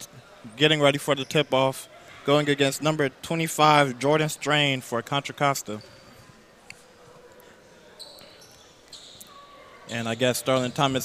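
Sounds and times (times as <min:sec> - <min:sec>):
distant voices in large hall: 0:00.0 - 0:11.0.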